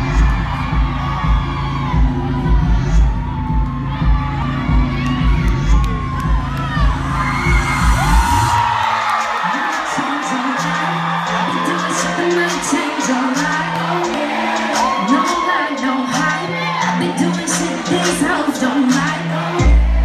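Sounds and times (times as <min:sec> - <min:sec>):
concert crowd screaming and cheering: 0:00.0 - 0:20.0
pulsing bass-heavy music: 0:00.0 - 0:20.0.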